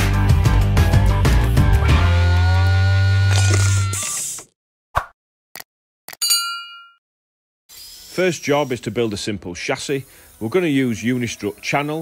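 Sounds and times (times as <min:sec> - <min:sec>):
background music: 0:00.0 - 0:03.0
metallic ding: 0:06.2 - 0:07.0.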